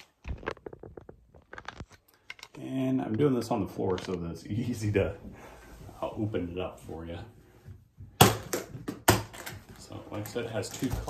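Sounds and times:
soft clicks and knocks of handling: 0:00.9 - 0:04.4.

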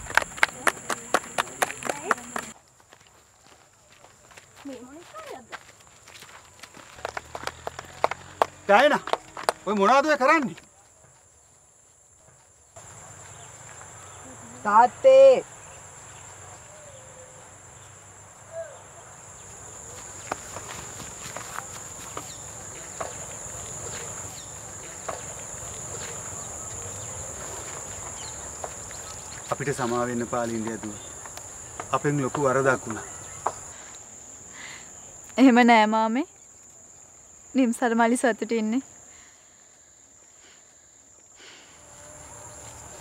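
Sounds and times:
group clapping in rhythm: 0:00.0 - 0:02.6, 0:06.8 - 0:09.9
faint outdoor background: 0:00.0 - 0:43.0
high-pitched insect chorus: 0:03.9 - 0:43.0.

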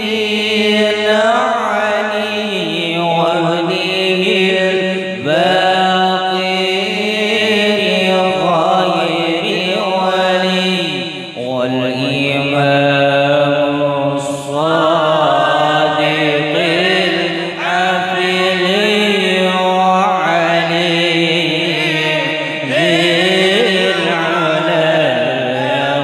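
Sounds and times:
men chanting unaccompanied: 0:00.0 - 0:26.0
lead voice ornamented melody: 0:06.7 - 0:26.0.

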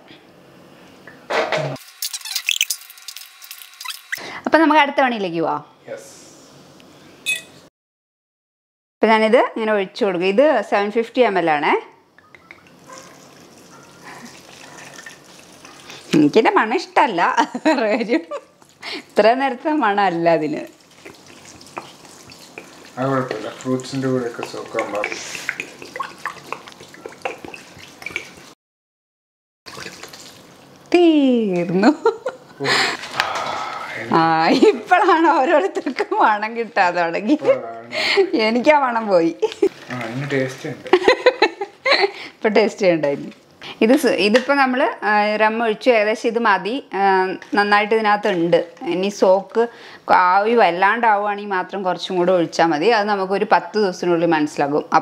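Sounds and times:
short squeak: 0:02.0 - 0:03.0
liquid trickling into bowl: 0:12.2 - 0:16.2, 0:20.6 - 0:28.5, 0:29.7 - 0:30.8.

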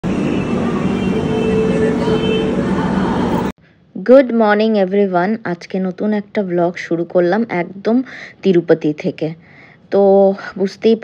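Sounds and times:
train noise: 0:00.0 - 0:03.5
crowd voices: 0:00.4 - 0:03.5.

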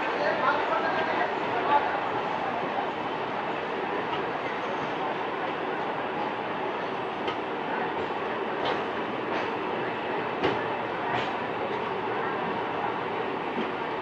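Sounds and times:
train wheels rumbling: 0:00.0 - 0:14.0.

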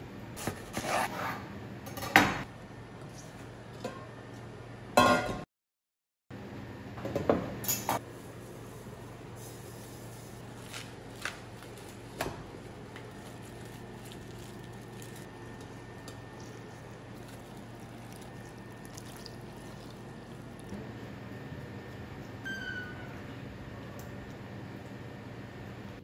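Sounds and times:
steady low hum: 0:06.3 - 0:26.0
cabbage crinkling in a steel bowl: 0:10.4 - 0:15.6, 0:16.3 - 0:20.7.

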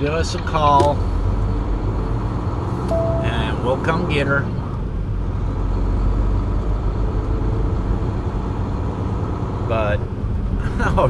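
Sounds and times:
truck diesel engine drone: 0:01.0 - 0:11.0.

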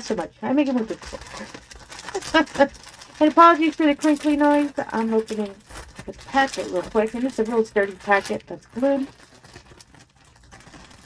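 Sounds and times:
plastic packaging crinkling: 0:00.0 - 0:11.0.

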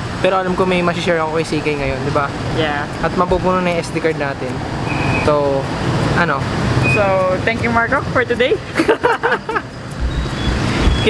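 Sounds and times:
road traffic noise: 0:00.0 - 0:11.0.

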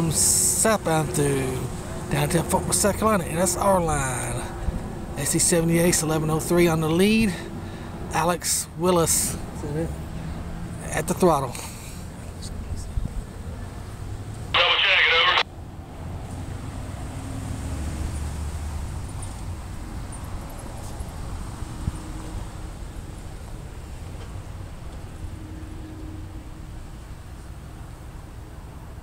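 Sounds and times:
town traffic rumble: 0:00.0 - 0:29.0
voice squawk through radio speaker: 0:14.6 - 0:15.4.

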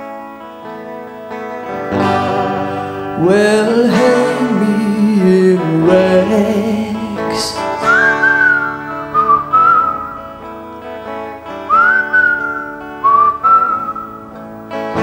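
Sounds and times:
acoustic guitar chords: 0:00.0 - 0:15.0
whistled melody: 0:07.8 - 0:10.5, 0:11.6 - 0:14.4.

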